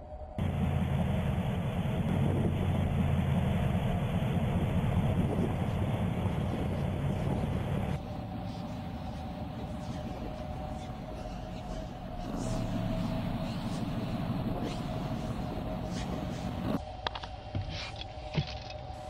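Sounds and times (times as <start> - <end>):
car engine running: 0.4 - 16.8.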